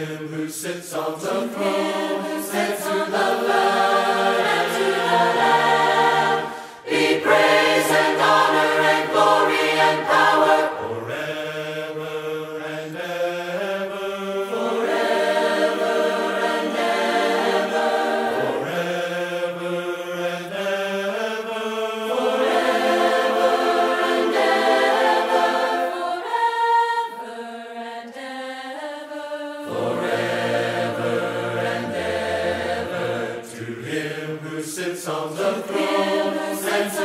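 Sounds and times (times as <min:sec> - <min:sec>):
choir singing a hymn: 0:00.0 - 0:37.0.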